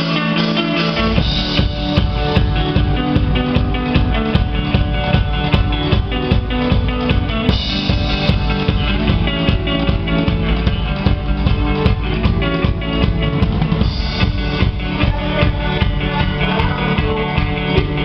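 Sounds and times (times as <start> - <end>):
folk band playing: 0.0 - 18.0
bass drum and snare beat: 0.9 - 18.0.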